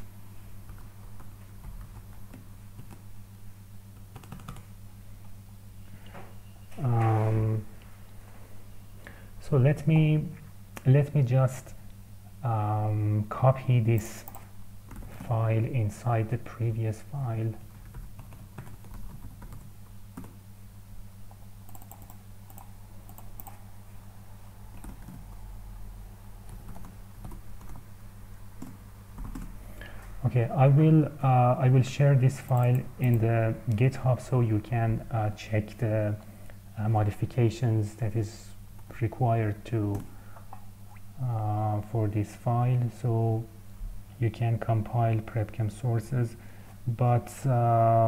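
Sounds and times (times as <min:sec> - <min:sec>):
steady low hum: 0:00.0 - 0:48.0
computer keyboard typing: 0:00.7 - 0:03.0, 0:04.0 - 0:04.7, 0:14.0 - 0:15.3, 0:17.8 - 0:20.4, 0:21.6 - 0:23.6, 0:24.7 - 0:25.3, 0:26.4 - 0:27.8, 0:28.6 - 0:29.5, 0:32.4 - 0:33.8
keyboard keystrokes: 0:21.7 - 0:23.6.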